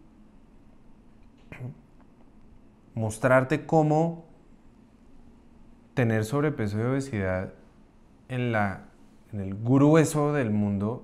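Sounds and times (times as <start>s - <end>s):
man's throat noise: 1.5s - 1.8s.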